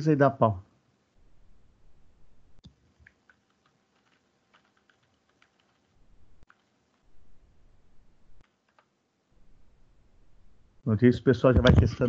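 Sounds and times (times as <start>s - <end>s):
computer keyboard typing: 2.9s - 7.0s, 8.4s - 8.9s.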